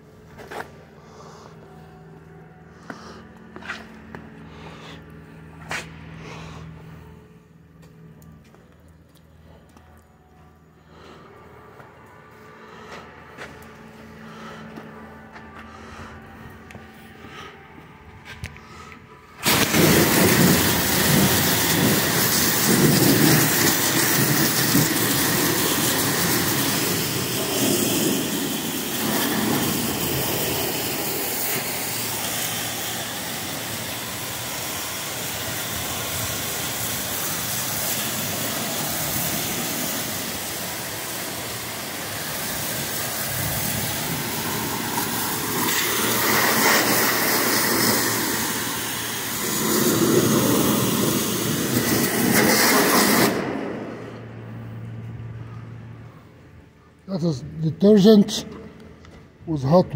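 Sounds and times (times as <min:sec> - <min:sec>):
pressure washer spray hissing: 0:19.4 - 0:54.3.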